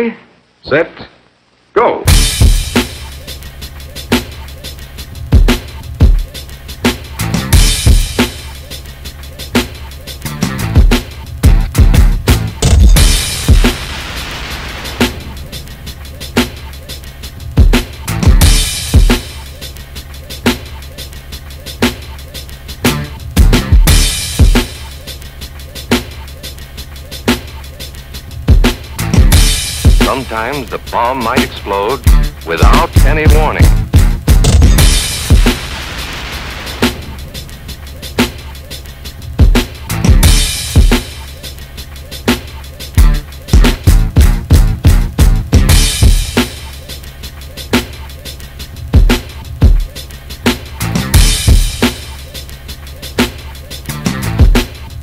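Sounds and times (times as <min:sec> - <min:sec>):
hip hop drum beat: 0:02.1 - 0:55.0
hi-hat ticks: 0:02.5 - 0:12.0, 0:15.4 - 0:33.1, 0:37.0 - 0:45.4, 0:46.0 - 0:55.0
low bass: 0:32.1 - 0:35.4, 0:43.0 - 0:45.8.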